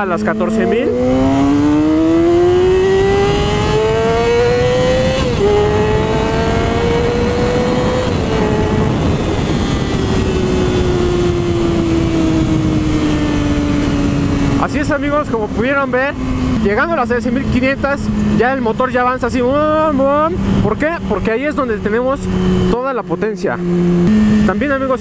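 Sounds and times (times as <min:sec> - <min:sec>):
motorcycle engine revving with gear shifts: 0:00.0 - 0:25.0
wind rushing over helmet: 0:03.3 - 0:14.6.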